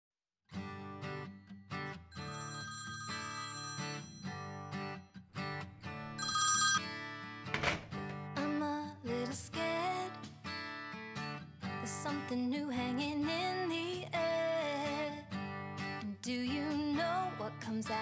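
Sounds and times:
telephone ringing: 0:02.2 - 0:04.6, 0:06.2 - 0:07.0
indie pop song: 0:08.1 - 0:10.6, 0:11.7 - 0:18.0.

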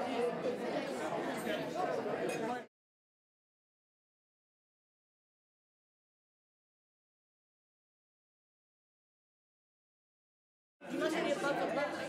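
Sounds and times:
chatter of many diners: 0:00.0 - 0:02.7, 0:10.8 - 0:12.0.

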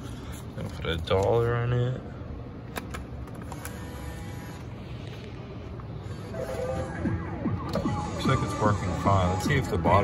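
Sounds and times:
machine hum: 0:03.3 - 0:10.0.

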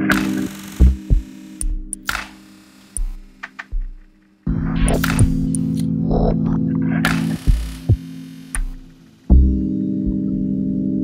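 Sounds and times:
low kick drum thumps: 0:03.7 - 0:04.0, 0:04.6 - 0:05.5, 0:09.3 - 0:10.3.

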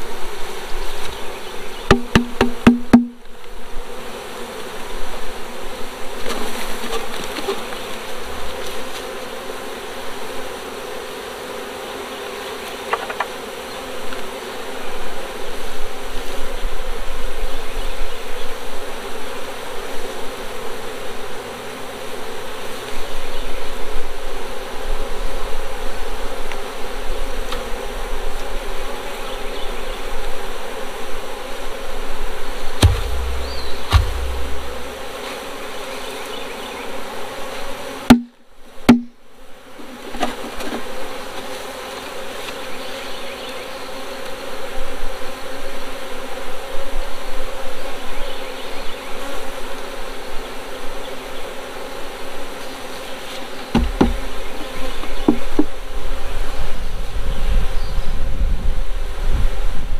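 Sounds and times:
honey bees buzzing: 0:00.0 - 0:59.9
wooden knocks: 0:01.9 - 0:03.2, 0:32.8 - 0:34.9, 0:53.8 - 0:54.3.

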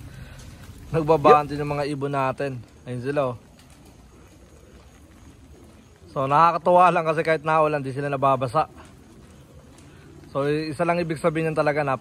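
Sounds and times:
light rain falling: 0:00.0 - 0:12.0
outdoor hiss: 0:00.0 - 0:12.0.

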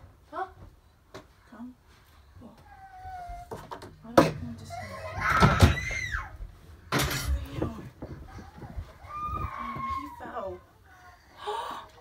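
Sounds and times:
baby whining: 0:02.6 - 0:03.7, 0:04.6 - 0:06.5, 0:08.0 - 0:12.0.

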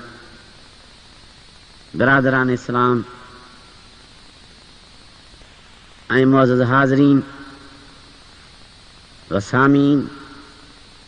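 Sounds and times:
low recording hiss: 0:00.0 - 0:11.0
man speaking with echo: 0:02.0 - 0:03.5, 0:06.1 - 0:07.8, 0:09.3 - 0:10.5.

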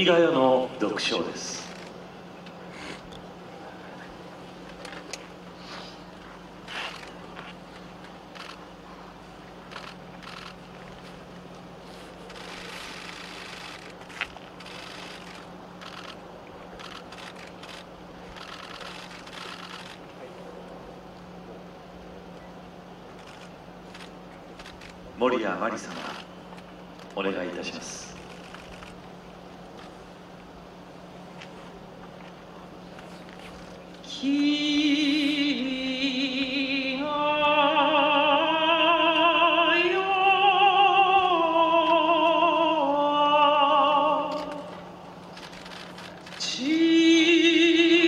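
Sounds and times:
low hum: 0:00.0 - 0:48.0
faint crowd murmuring: 0:00.7 - 0:07.6, 0:18.3 - 0:26.3
faint clicks and rustles: 0:01.6 - 0:05.4, 0:06.1 - 0:21.2, 0:28.1 - 0:30.5, 0:31.2 - 0:34.1, 0:44.3 - 0:46.5.

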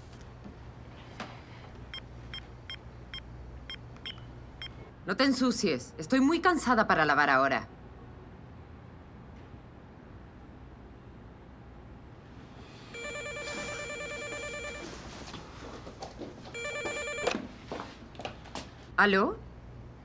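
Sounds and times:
telephone ringing electronically: 0:12.9 - 0:15.2, 0:16.5 - 0:17.5.

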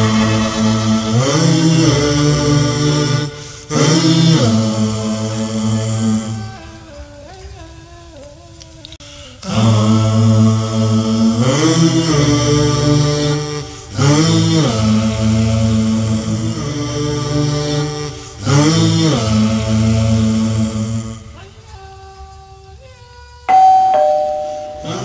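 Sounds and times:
deep vocal chant: 0:00.0 - 0:23.4.

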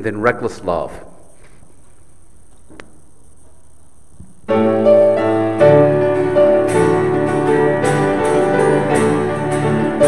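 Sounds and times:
low steady hum: 0:00.0 - 0:04.6.

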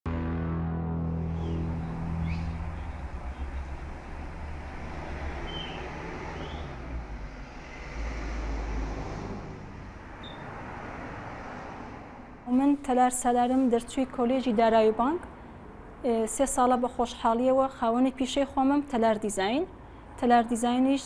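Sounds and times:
low rumble with hiss: 0:01.0 - 0:08.0
faint short chirps: 0:10.2 - 0:10.4.

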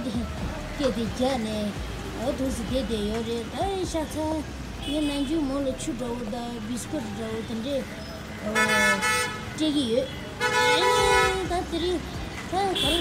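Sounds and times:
vehicle horn honking: 0:08.5 - 0:09.6, 0:10.3 - 0:11.5, 0:12.6 - 0:13.0.

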